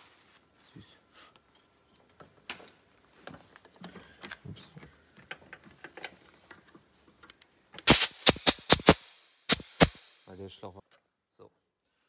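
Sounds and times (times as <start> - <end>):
air inflator gun bursts: 7.9 - 10.3
sharp air blasts: 7.9 - 10.4.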